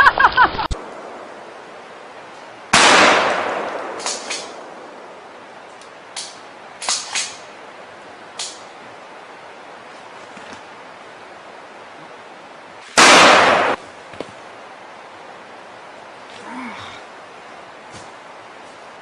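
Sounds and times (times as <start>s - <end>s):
gunshot from a rifle: 2.8s - 4.6s, 13.0s - 13.8s.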